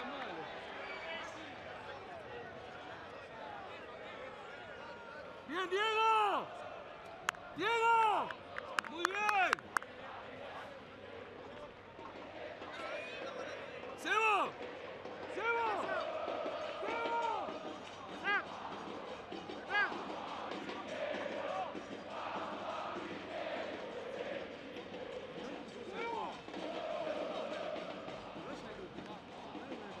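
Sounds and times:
crowd murmur: 0:00.0 - 0:30.0
players shouting calls: 0:00.0 - 0:30.0.

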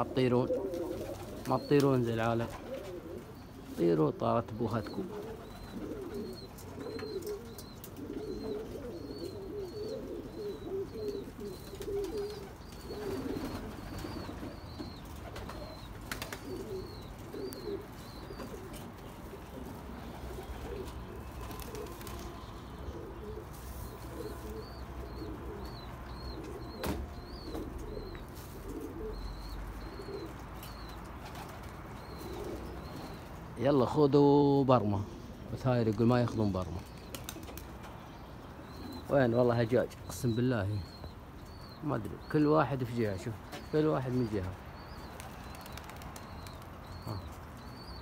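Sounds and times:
pigeons cooing: 0:00.0 - 0:48.0
small bird chirping: 0:04.6 - 0:33.4, 0:36.6 - 0:48.0.

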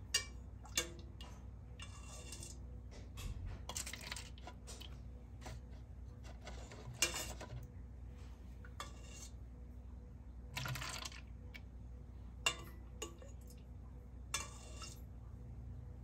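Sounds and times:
plastic cups clicking and clattering: 0:03.6 - 0:07.7, 0:10.6 - 0:11.3.

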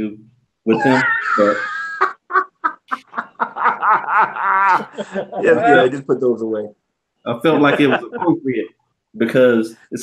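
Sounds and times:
man laughing: 0:00.7 - 0:05.9, 0:07.4 - 0:08.5.

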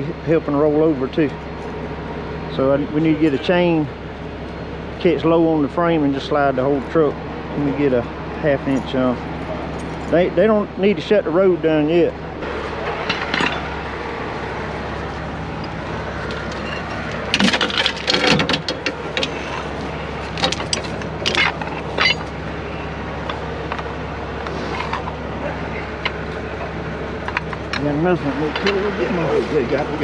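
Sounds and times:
truck engines idling: 0:00.0 - 0:30.0
metal chain clinking: 0:08.7 - 0:10.2, 0:12.9 - 0:13.8, 0:15.6 - 0:23.5.

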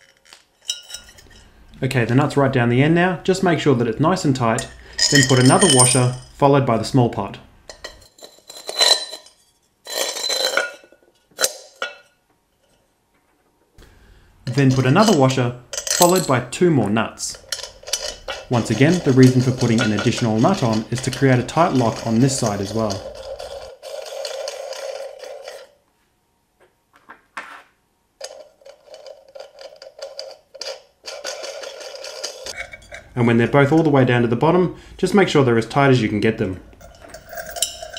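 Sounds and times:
clay pot scraping: 0:00.0 - 0:02.6, 0:03.2 - 0:06.4, 0:07.7 - 0:12.0, 0:14.4 - 0:16.5, 0:17.2 - 0:25.8, 0:27.4 - 0:34.0, 0:36.7 - 0:37.9
clay pot clinking: 0:00.2 - 0:02.3, 0:04.2 - 0:06.4, 0:07.6 - 0:12.2, 0:14.4 - 0:25.7, 0:28.2 - 0:34.1, 0:36.4 - 0:37.9
nuts spinning on threaded rod: 0:04.5 - 0:06.3, 0:17.3 - 0:25.7, 0:28.2 - 0:33.1, 0:36.8 - 0:37.9.

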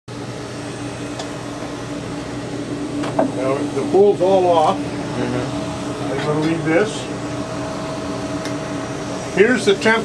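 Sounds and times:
machine hum: 0:00.1 - 0:10.0.

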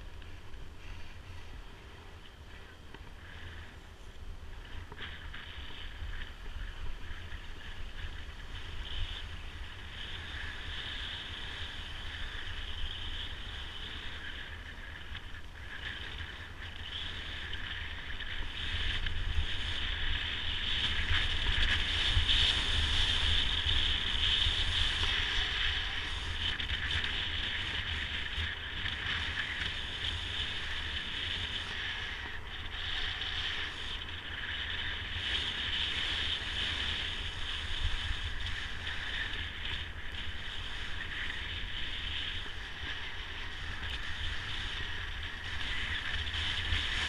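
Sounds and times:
skis sliding over snow: 0:00.0 - 0:47.0
wind rumbling on microphone: 0:00.0 - 0:47.0.

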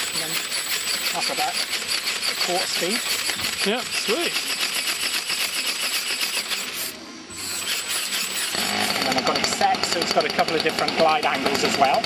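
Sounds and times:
gears clattering in a ratcheting buzz: 0:00.0 - 0:12.0.

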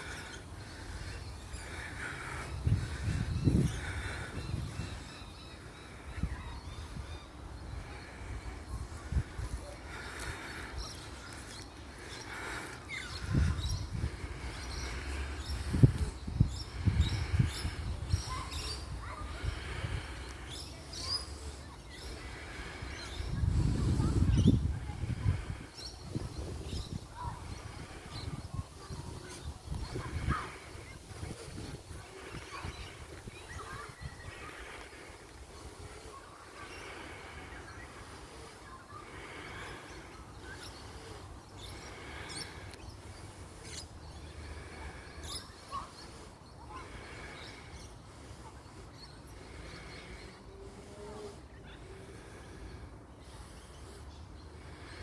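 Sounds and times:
corellas calling: 0:00.0 - 0:55.0.

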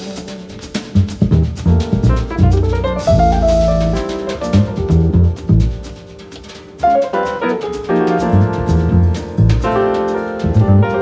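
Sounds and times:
double bass: 0:00.0 - 0:06.2, 0:08.2 - 0:11.0
drum kit: 0:00.0 - 0:11.0
grand piano: 0:00.0 - 0:11.0.

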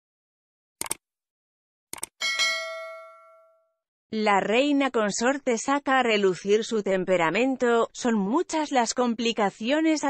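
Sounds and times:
bell ding: 0:02.2 - 0:03.8.

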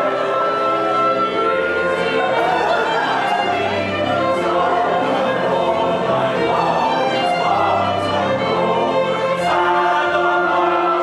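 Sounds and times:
chorus singing: 0:00.0 - 0:11.0
orchestra strings: 0:00.0 - 0:11.0.

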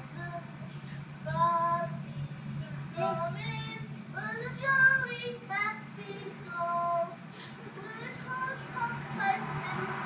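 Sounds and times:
child singing through tv speaker: 0:00.0 - 0:10.0
steady low hum: 0:00.0 - 0:10.0.

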